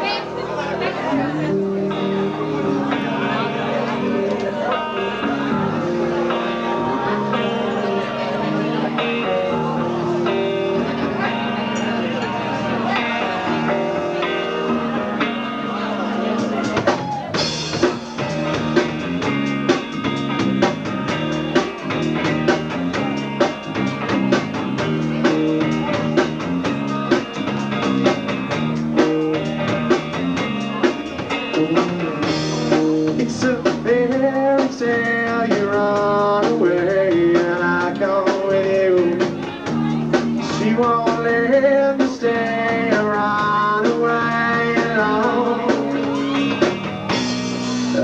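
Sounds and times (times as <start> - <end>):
person singing: 0.0 - 18.4, 31.4 - 46.7
bass guitar: 0.0 - 48.0
drum kit: 0.0 - 48.0
electric guitars: 0.0 - 48.0.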